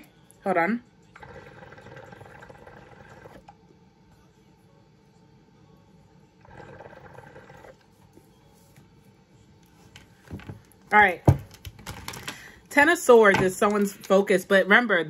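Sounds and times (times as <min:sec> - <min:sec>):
hookah water bubbling: 0:01.2 - 0:03.6, 0:06.4 - 0:08.0.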